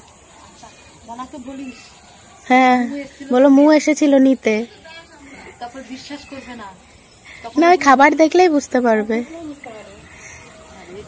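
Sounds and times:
steady high-pitched hiss: 0.0 - 11.0
woman talking: 0.6 - 1.9, 7.4 - 11.0.

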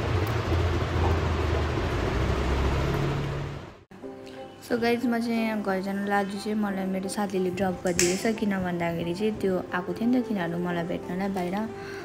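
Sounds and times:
motor rumble: 0.0 - 3.8.

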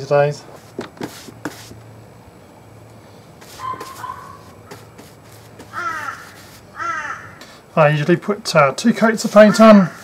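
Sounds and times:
faint outdoor background: 0.0 - 10.0
crow cawing: 5.6 - 7.6, 9.4 - 10.0.

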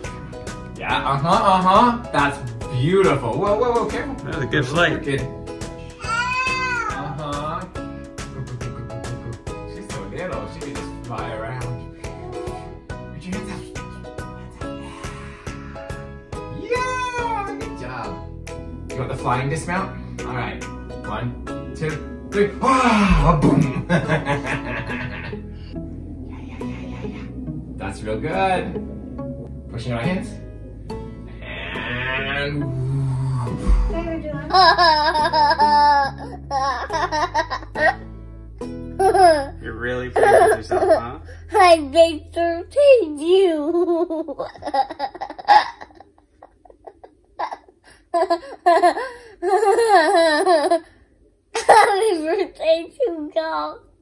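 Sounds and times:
soft background music: 0.0 - 46.0
small child squealing: 6.0 - 7.2
upbeat acoustic guitar music: 15.7 - 24.6
young child laughing: 34.5 - 38.0, 39.0 - 39.5, 40.2 - 41.2, 43.7 - 50.9, 51.6 - 52.4.

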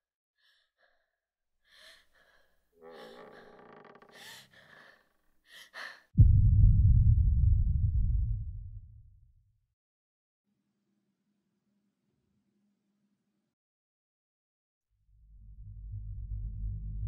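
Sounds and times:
girl breathing shakily: 1.7 - 6.2
loud low boom: 6.2 - 9.3.

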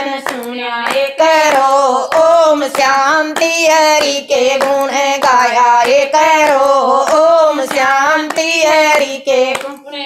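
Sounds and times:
rhythmic hand claps: 0.0 - 10.0
women singing devotional song: 0.0 - 10.0.

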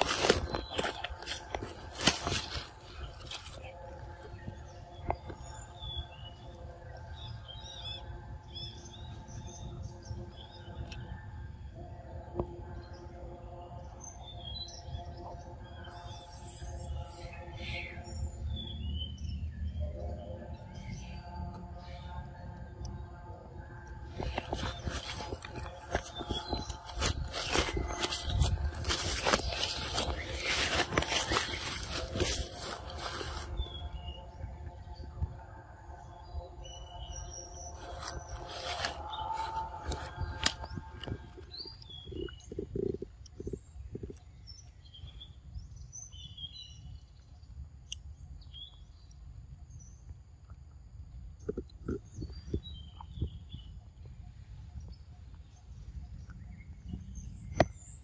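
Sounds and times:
birds chirping: 0.0 - 47.3, 51.4 - 58.0
macaque chewing soft fruit: 24.4 - 33.8.

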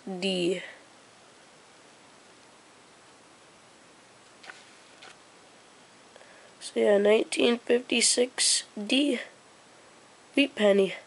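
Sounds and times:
steady low hiss: 0.0 - 11.0.

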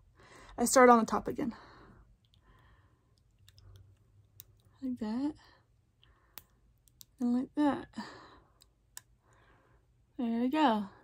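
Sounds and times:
soft breath: 1.5 - 3.8, 8.0 - 10.0.

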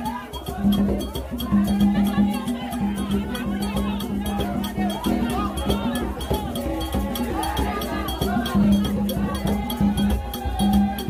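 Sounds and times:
choir of voices singing: 0.0 - 11.0
metal bell struck rhythmically: 0.0 - 11.0
percussion: 0.0 - 11.0.

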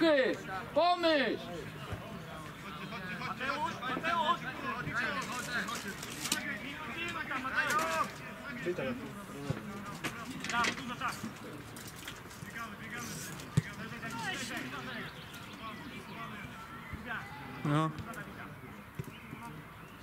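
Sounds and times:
football players shouting: 0.0 - 9.1, 12.6 - 18.6.

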